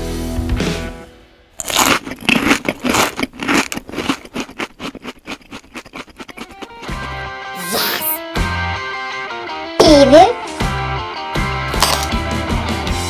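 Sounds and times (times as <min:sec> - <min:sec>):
toy crunching plastic fruit: 0:01.6 - 0:07.9.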